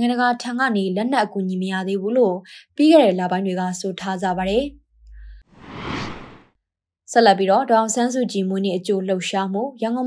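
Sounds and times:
whoosh: 5.0 - 6.5.

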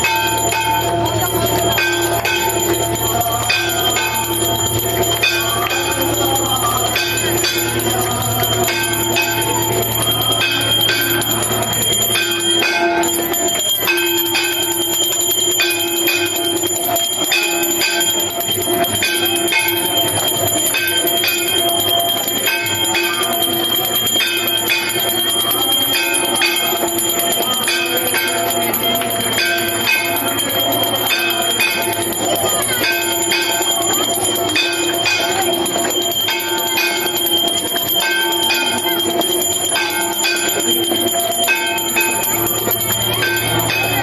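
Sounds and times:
temple bells ringing: 0.0 - 44.0.

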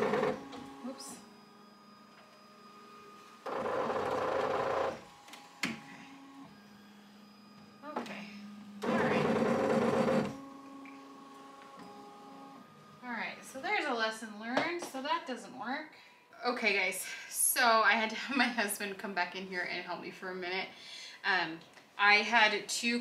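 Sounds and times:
embroidery machine whirring: 0.0 - 14.0
steady machine hum: 0.0 - 14.5.

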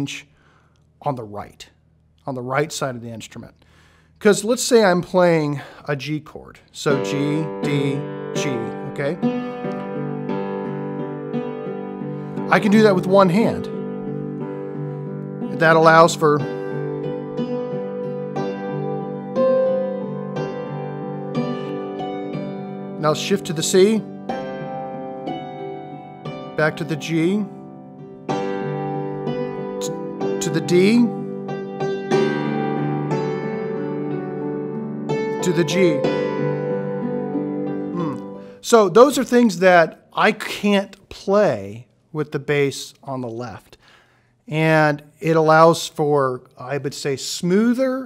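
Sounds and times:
hammered dulcimer notes ringing: 6.9 - 38.0.

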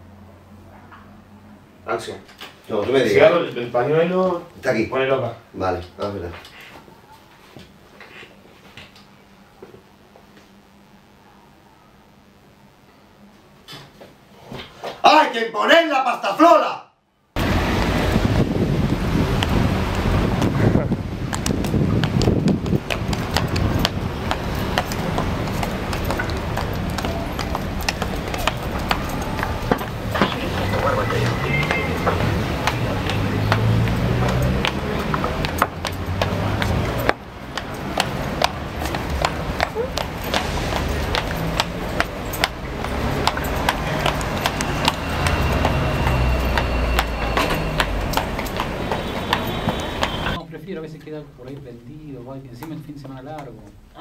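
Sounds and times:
traffic: 0.0 - 10.0, 17.3 - 54.0
indistinct voices: 21.8 - 51.6.

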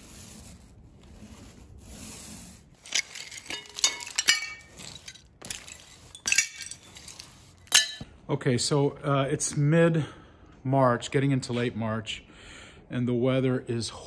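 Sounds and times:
paint roller rolling on board: 0.0 - 7.8
glass pieces clinking: 2.8 - 8.0.

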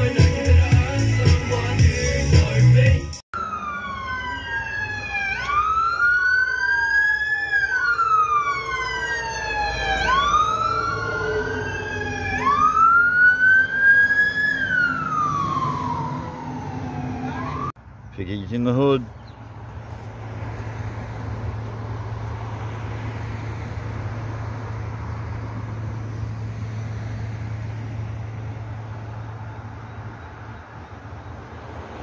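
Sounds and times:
intro music: 0.0 - 3.2
fire engine siren wailing: 3.3 - 17.8.

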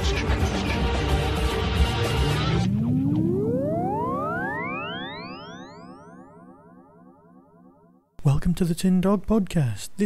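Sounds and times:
synthesized tone gliding upward: 1.3 - 8.0.

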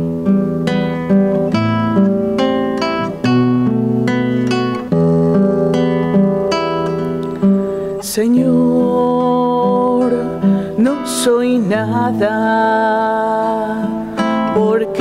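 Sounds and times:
classical guitar playing: 0.0 - 15.0.

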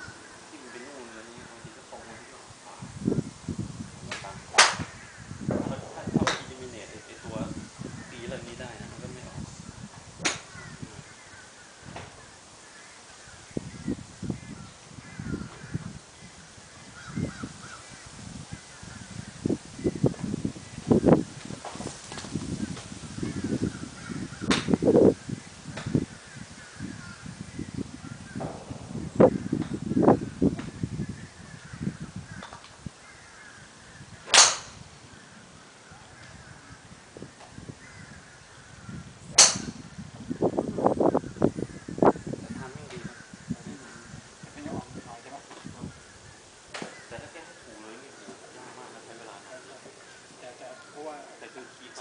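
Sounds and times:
golf club striking ball: 4.1 - 5.0, 10.2 - 10.6, 24.4 - 24.8, 34.2 - 34.8, 39.3 - 39.9
low rumbling noise: 22.4 - 32.4.

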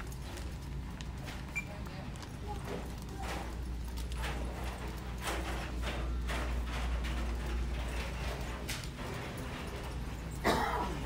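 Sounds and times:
store background hum: 0.0 - 11.0.

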